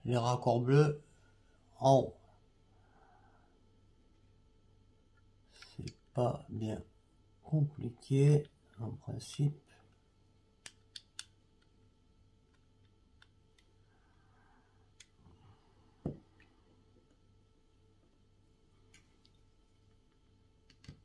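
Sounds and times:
faint low hum: 0.0s - 21.0s
dull tap: 16.0s - 16.2s.

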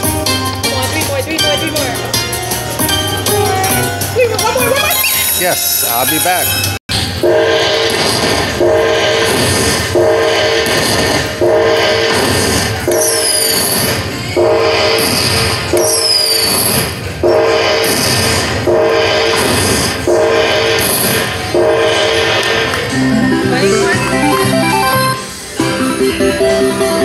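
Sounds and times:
slot machine horn-like chord: 7.2s - 8.0s, 9.9s - 10.6s, 21.5s - 27.0s.

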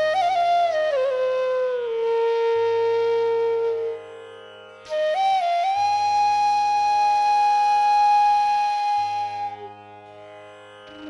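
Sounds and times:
flute holding long note: 0.0s - 4.3s, 4.9s - 9.9s.

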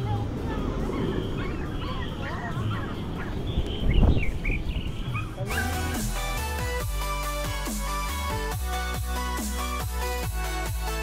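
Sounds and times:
wind rumble on microphone: 0.0s - 5.4s
electronic music: 5.4s - 11.0s.

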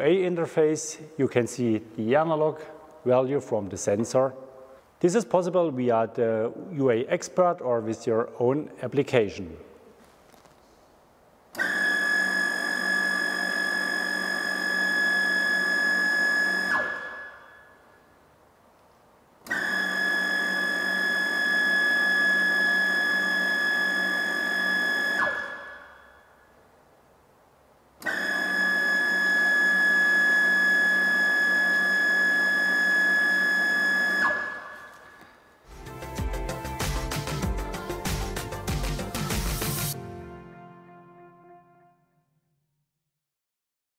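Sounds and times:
mixing pump high whine: 11.6s - 17.8s, 19.4s - 26.1s, 28.0s - 35.9s.

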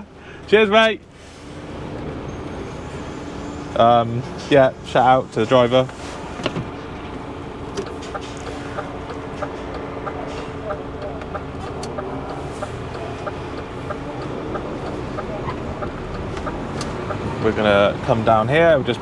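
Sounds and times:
truck engine running at low revs: 0.0s - 19.0s
light regular ticking: 7.7s - 18.4s.

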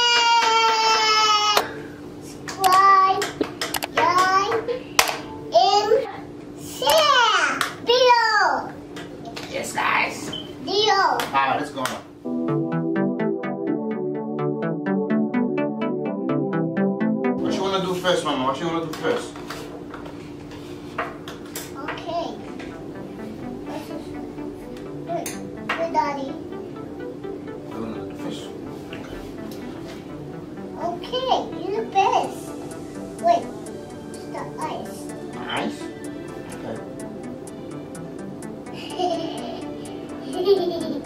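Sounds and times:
sharp clicks and taps: 2.5s - 4.4s.

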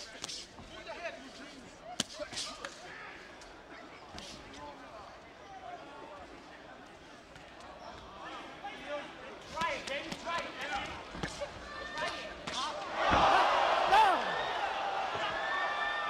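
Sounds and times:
crowd noise: 0.0s - 16.0s
people shouting: 11.7s - 16.0s.

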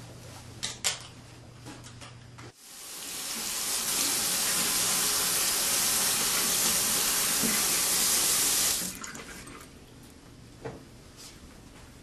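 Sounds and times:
faucet water running into sink: 2.6s - 9.5s.

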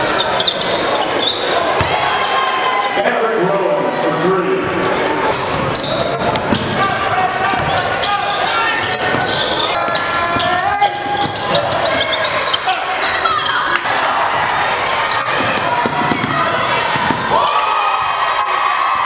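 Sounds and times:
hubbub of voices and shouts: 0.0s - 19.0s.

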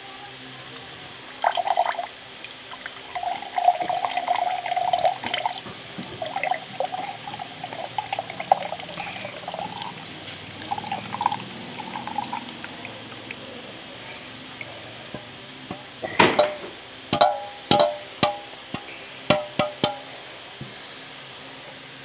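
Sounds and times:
juice pouring into a glass mug: 1.4s - 13.5s.

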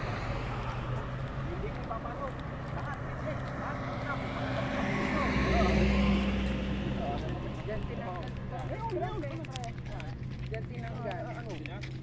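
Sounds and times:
car passing by: 0.0s - 9.3s.

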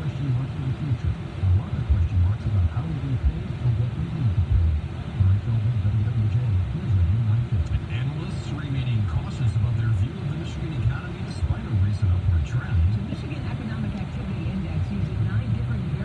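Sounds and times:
man talking muffled: 0.0s - 13.4s.

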